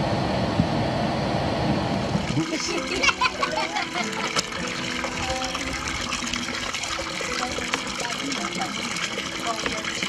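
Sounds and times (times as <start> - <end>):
water pouring into plastic basin: 2.0 - 10.0
background music: 2.4 - 10.0.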